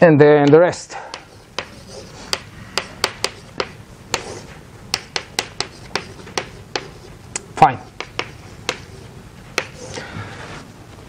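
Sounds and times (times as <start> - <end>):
chalk clicking on chalkboard: 0.5 - 10.0
chalk scratching: 1.1 - 7.2, 7.8 - 10.0.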